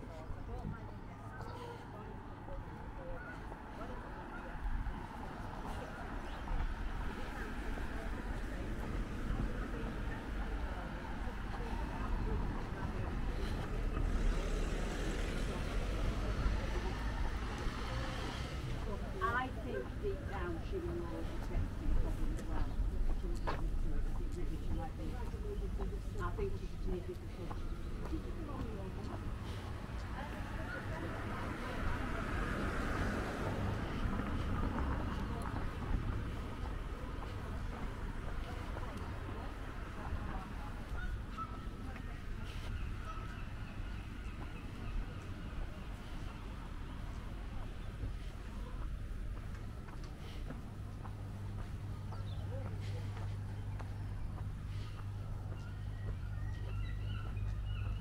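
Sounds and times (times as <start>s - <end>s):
faint voices of passers-by: 0.0s - 58.0s.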